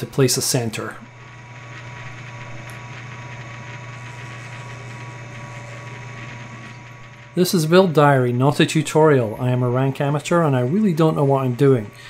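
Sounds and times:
lathe motor hum: 0.0s - 12.0s.

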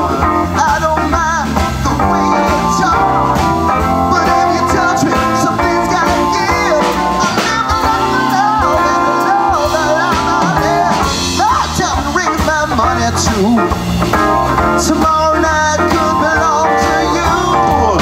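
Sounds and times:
blues-rock band playing: 0.0s - 18.0s
electric guitar lead melody bending: 0.0s - 18.0s.

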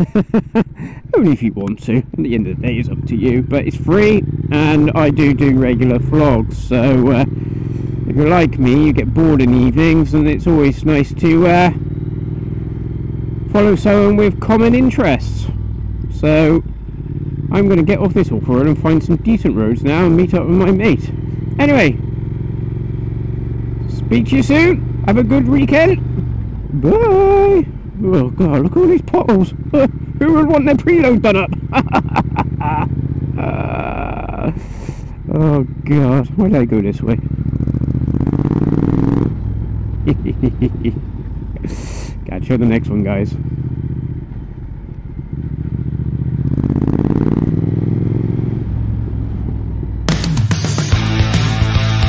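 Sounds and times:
motorcycle engine running: 0.0s - 52.0s.

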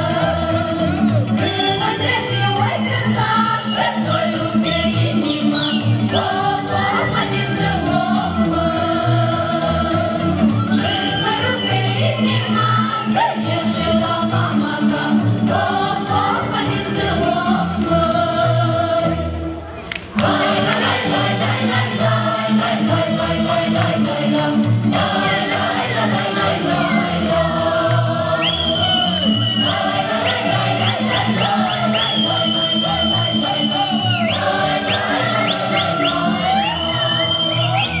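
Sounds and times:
folk ensemble singing in chorus: 0.0s - 38.0s.

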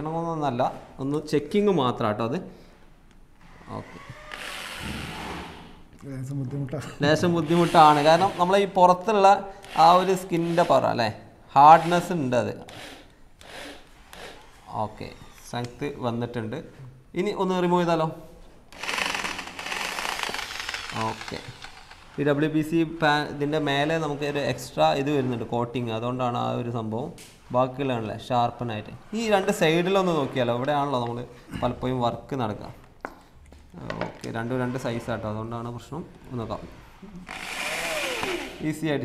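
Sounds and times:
electric drill driving a screw: 3.6s - 5.7s, 7.4s - 8.4s, 9.6s - 10.8s, 12.7s - 15.5s, 18.7s - 22.2s, 37.3s - 38.6s.

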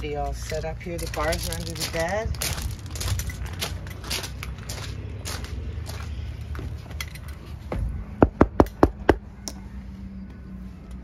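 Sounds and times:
footsteps crunching on gravel: 0.0s - 7.7s.

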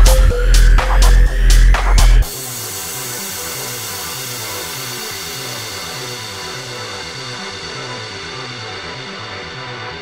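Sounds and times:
electronic music low bass notes: 0.0s - 10.0s
steady hiss: 2.3s - 7.0s.

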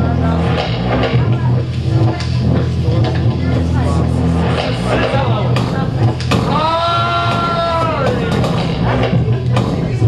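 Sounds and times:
low electronic drone: 0.0s - 10.0s.

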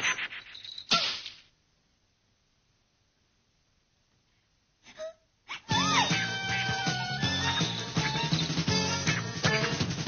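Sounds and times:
cartoon whip crack: 0.0s - 1.4s.

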